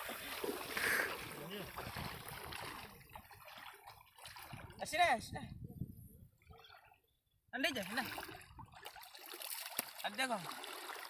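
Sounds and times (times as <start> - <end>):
seawater sloshing and trickling: 0.0 - 5.3, 6.2 - 11.0.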